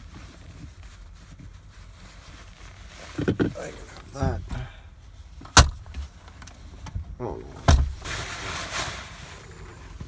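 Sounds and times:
sharp knock in truck cab: 5.6 - 5.8.

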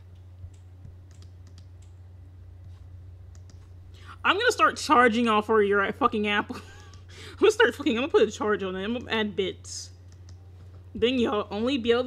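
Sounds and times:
steady low hum: 0.0 - 12.0
computer keyboard clicks: 0.2 - 2.0, 3.3 - 3.7, 10.1 - 10.4.

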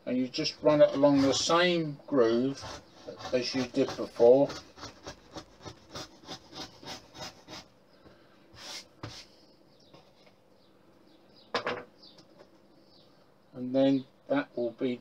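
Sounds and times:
cutter scraping wood: 0.4 - 1.6, 2.3 - 7.6.

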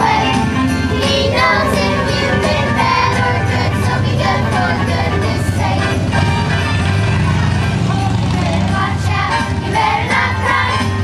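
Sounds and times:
children's choir singing a carol: 0.0 - 11.0
musical accompaniment: 0.0 - 11.0.

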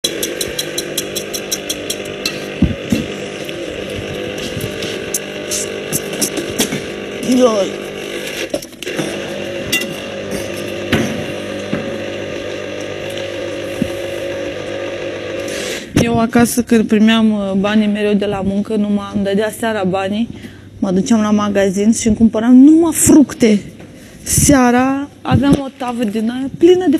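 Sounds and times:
steady background hum: 0.0 - 26.9
person speaking: 7.2 - 8.0.

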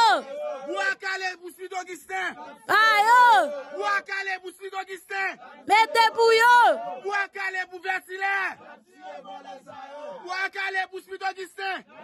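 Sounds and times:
crowd voices: 0.0 - 1.0, 2.3 - 4.1, 5.3 - 7.3
man shouting: 0.0 - 1.2, 2.7 - 4.4, 5.7 - 8.5.

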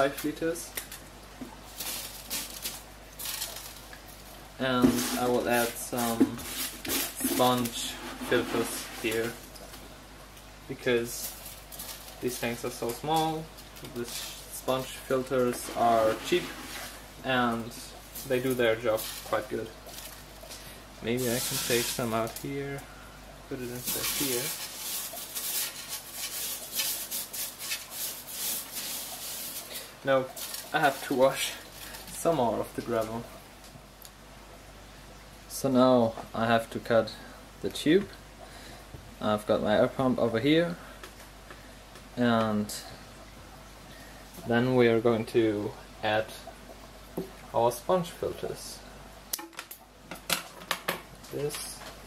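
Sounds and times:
gravel scraping on glass: 4.7 - 9.4, 11.1 - 17.1, 21.1 - 22.4, 23.6 - 32.3.

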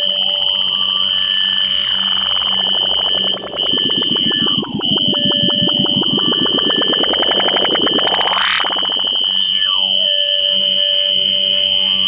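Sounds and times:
falling electronic glide: 0.0 - 9.7
soft even pulse: 0.0 - 9.7
high electronic whine: 0.0 - 10.4
fast stream of clicks: 1.7 - 9.4.

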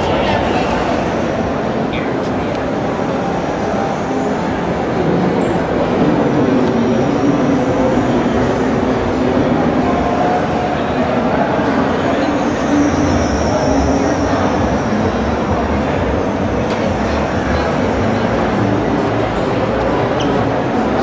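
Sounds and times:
indistinct crowd chatter: 0.0 - 21.0.

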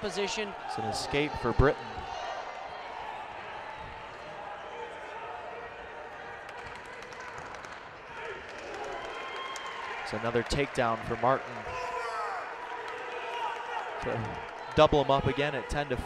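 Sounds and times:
crowd chatter: 10.1 - 16.0
people shouting: 11.7 - 15.7.

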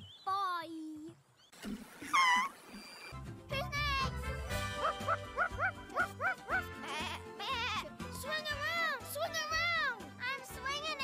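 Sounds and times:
short rising pitched calls: 2.0 - 3.1
light background music: 3.1 - 11.0.

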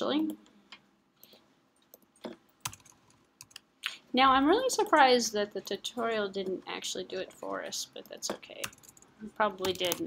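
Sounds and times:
computer keyboard keystrokes: 1.9 - 3.6, 8.3 - 10.0.

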